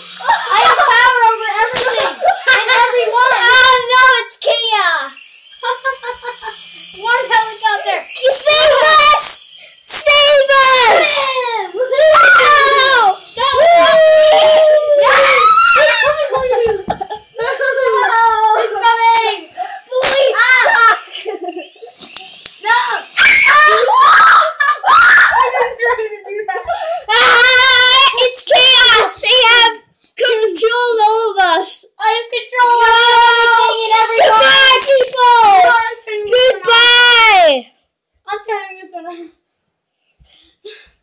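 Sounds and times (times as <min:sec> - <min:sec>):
boy screaming: 0:00.2 - 0:05.0, 0:07.0 - 0:21.4, 0:22.6 - 0:25.9, 0:26.7 - 0:29.8, 0:32.5 - 0:37.6.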